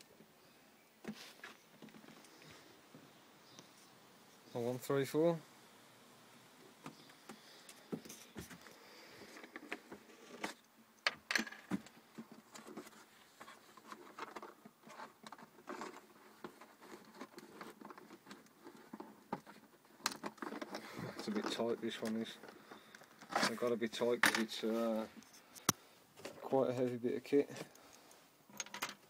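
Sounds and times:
hand handling cardboard mechanism: 0:06.8 - 0:27.9.

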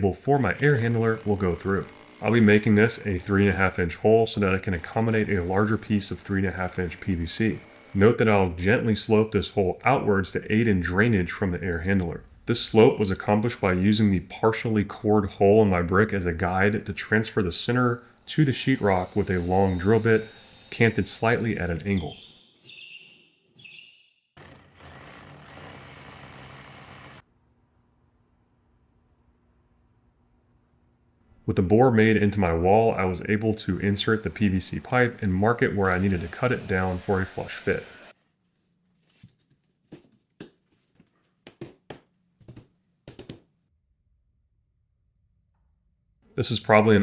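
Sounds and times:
power drill cutting drywall: 0:00.6 - 0:08.2, 0:18.4 - 0:22.1, 0:24.4 - 0:27.2, 0:33.7 - 0:38.2.

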